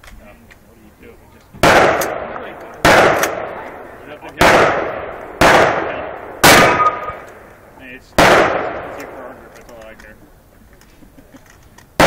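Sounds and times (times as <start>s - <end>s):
rifle gunshots with echo: 1.6s - 7.5s, 8.2s - 9.4s.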